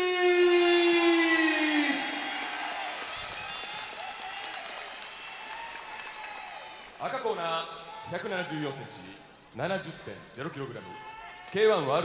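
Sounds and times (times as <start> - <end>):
crowd cheering and applause: 0.0 - 7.2.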